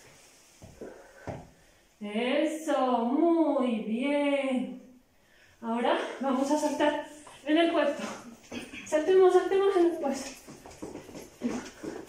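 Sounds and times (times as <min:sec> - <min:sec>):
footsteps shuffling on tiled floor: 0:00.0 - 0:01.6, 0:06.2 - 0:12.0.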